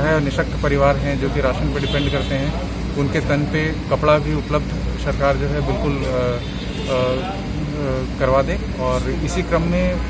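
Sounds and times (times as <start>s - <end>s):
man's drawn-out hesitation sound: 0.0s - 10.0s.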